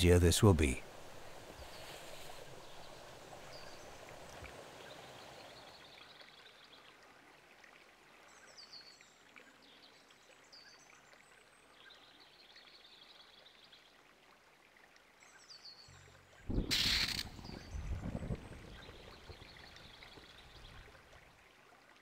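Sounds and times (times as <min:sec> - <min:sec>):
soft steady hiss: 0:00.0 - 0:22.0
high bird calls: 0:16.5 - 0:17.9.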